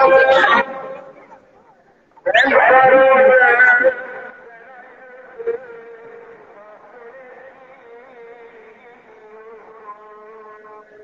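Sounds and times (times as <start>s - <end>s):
person chanting over loudspeaker: 0.0s - 11.0s.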